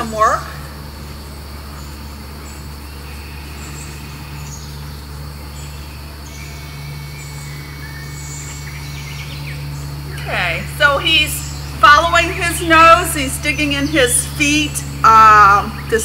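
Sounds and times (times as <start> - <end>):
birds chirping: 0.0 - 16.0
insects chirping: 0.0 - 16.0
steady low hum: 0.0 - 16.0.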